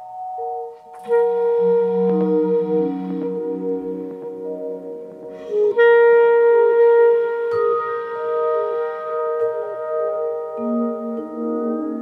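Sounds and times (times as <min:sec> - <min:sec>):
clarinet holding long note: 0:00.8 - 0:12.0.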